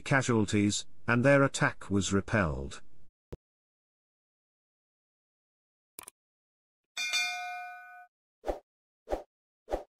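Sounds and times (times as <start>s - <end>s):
notification bell ding: 7.0s - 8.1s.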